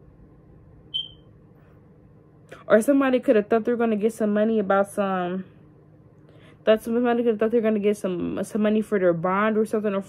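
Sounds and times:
faint room hum: 0.0 - 10.0
short high-pitched chirp: 0.9 - 1.2.

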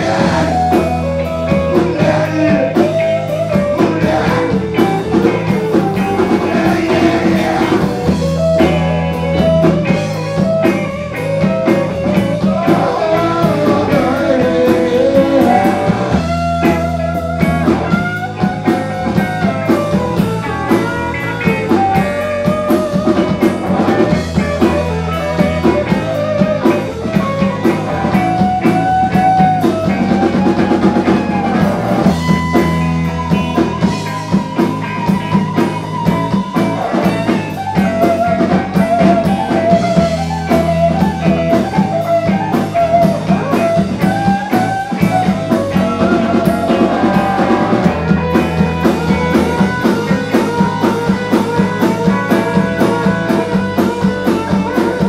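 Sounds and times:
bass guitar: 0.0 - 55.0
drum kit: 0.0 - 55.0
electric guitar: 0.0 - 55.0.

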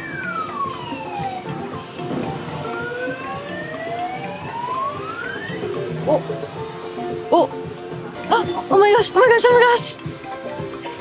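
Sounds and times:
arcade background music: 0.0 - 11.0.

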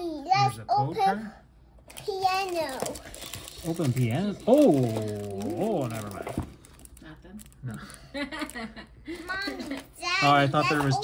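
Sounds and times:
plastic wrap rustling: 1.9 - 11.0.

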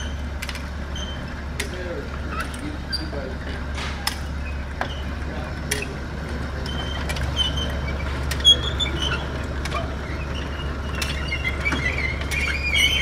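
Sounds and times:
conveyor belt clicks and squeaks: 0.0 - 13.0
gear motor humming: 0.0 - 13.0.

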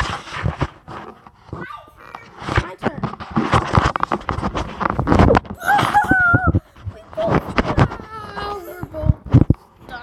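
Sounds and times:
child squealing: 5.6 - 8.9
child short vocal sounds: 5.6 - 9.1.

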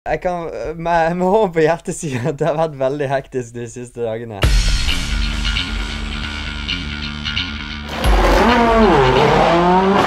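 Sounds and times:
race car engine revving: 7.8 - 10.0.

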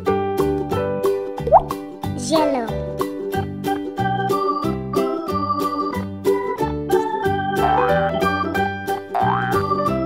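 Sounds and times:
electronic keyboard music: 6.9 - 10.0
rising cartoon bloop: 7.6 - 8.3.

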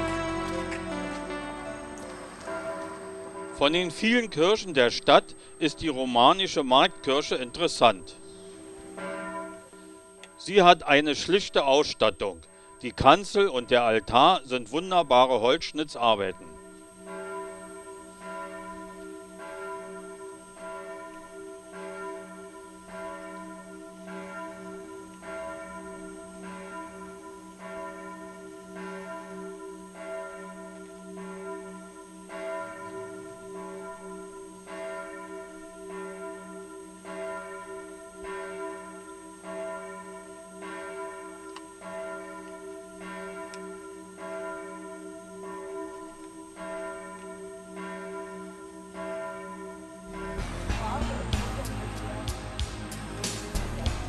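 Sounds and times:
church bells ringing: 0.0 - 54.0.

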